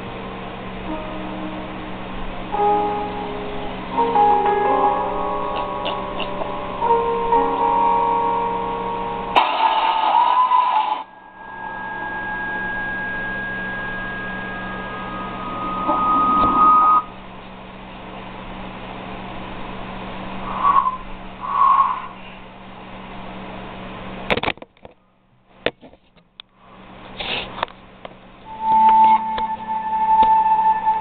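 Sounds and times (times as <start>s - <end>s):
film score tones: 0.6s - 17.2s, 28.4s - 31.0s
short tonal sounds: 0.8s - 17.2s
loud rumbling swell: 11.0s - 23.5s.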